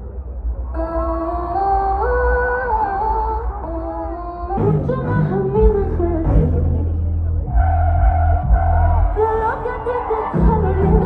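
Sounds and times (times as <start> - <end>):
live concert music: 4.6 - 11.0.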